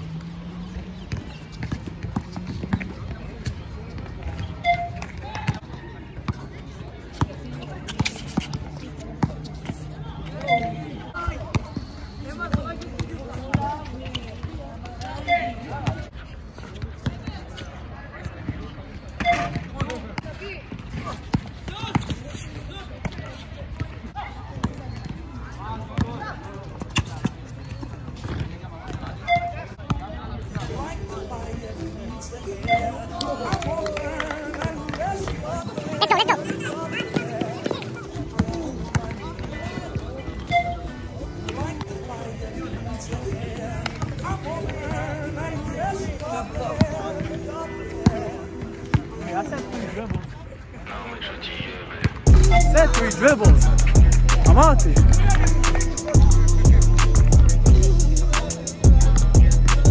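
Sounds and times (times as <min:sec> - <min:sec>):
basketball bouncing on asphalt: 0:00.6 - 0:05.6.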